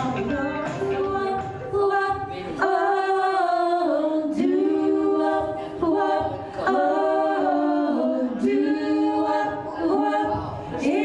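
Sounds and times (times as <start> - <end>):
women singing in close harmony: 0.0 - 11.0.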